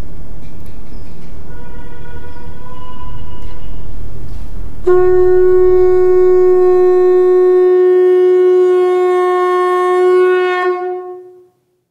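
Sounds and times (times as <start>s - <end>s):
long wind instrument note: 1.5s - 11.6s.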